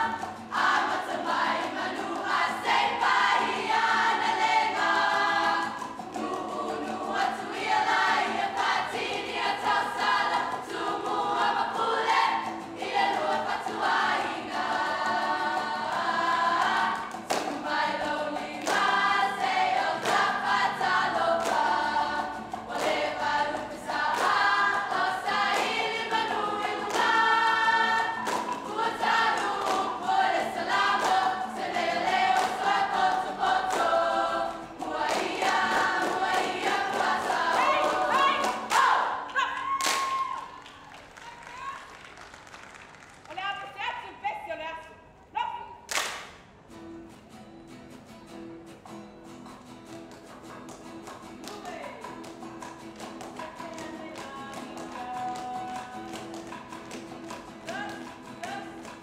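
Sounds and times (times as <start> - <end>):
women's choir singing: 0.0 - 39.4, 53.2 - 59.0
hand claps: 12.0 - 43.4, 45.9 - 46.5, 49.8 - 59.0.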